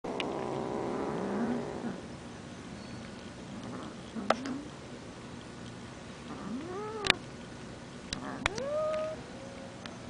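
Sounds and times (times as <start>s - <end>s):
kitten purring: 0.1s - 2.1s.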